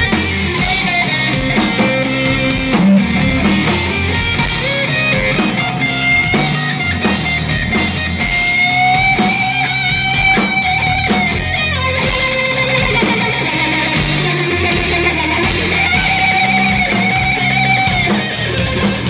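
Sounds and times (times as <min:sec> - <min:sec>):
bass: 0:00.0 - 0:19.0
drums with cymbal strikes: 0:00.0 - 0:19.0
electric guitar: 0:00.0 - 0:19.0.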